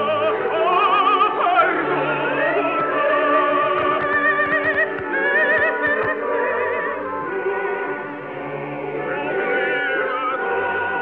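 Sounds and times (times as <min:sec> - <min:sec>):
operatic voices singing: 0:00.0 - 0:11.0
sustained orchestra: 0:00.0 - 0:11.0.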